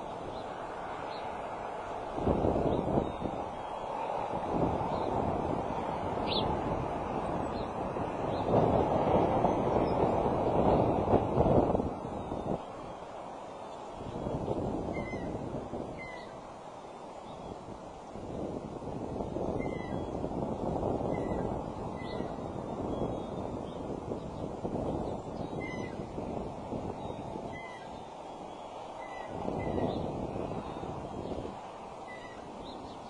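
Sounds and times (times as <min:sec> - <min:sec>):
wind rushing on microphone: 0:00.0 - 0:33.0
short high bird calls: 0:16.0 - 0:16.4, 0:32.0 - 0:32.5.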